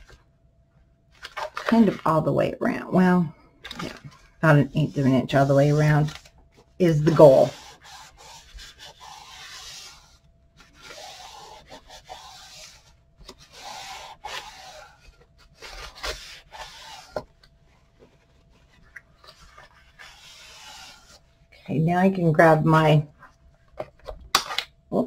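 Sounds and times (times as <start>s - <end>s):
paper towel rubbing on paper: 4.4s - 6.2s, 6.8s - 17.2s, 19.4s - 21.2s.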